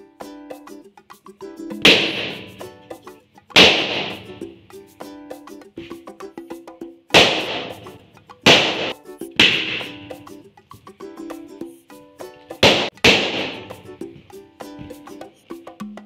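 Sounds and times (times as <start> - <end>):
bright background music: 0.0 - 16.0
balloons popping: 1.8 - 2.8, 3.6 - 4.6, 7.2 - 10.3, 12.6 - 15.0.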